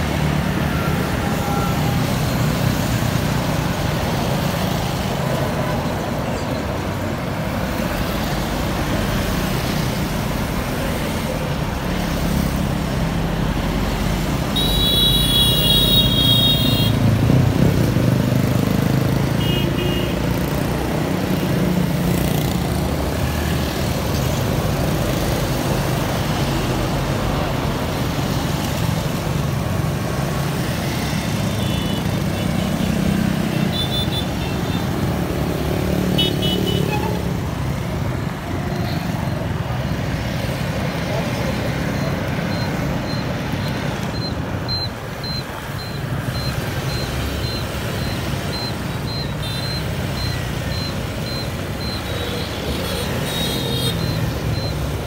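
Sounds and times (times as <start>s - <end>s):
traffic passing on wet road: 0.0s - 55.0s
high repeating beep: 41.8s - 52.3s, 53.9s - 55.0s.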